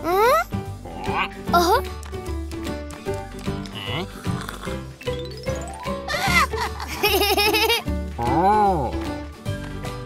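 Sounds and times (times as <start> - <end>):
cartoon music with bouncing bass: 0.0 - 9.2.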